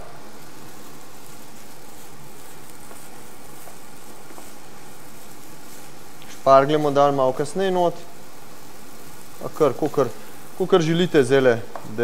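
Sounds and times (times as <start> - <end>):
chicken and rice sizzling in pan: 0.0 - 12.0.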